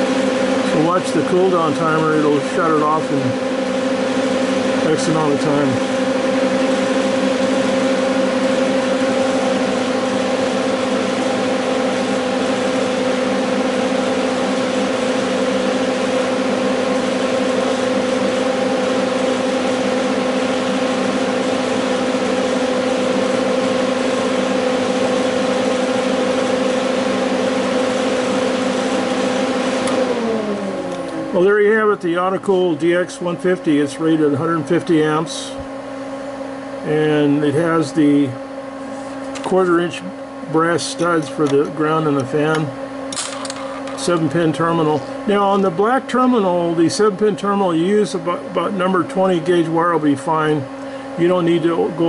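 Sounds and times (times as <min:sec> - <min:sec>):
radiator cooling fan running: 0:00.0 - 0:52.0.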